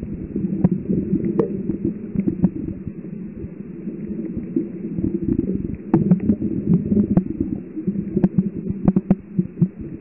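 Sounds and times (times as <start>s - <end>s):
underwater rumbling and throbbing: 0.0s - 10.0s
faint clicks: 8.1s - 9.8s.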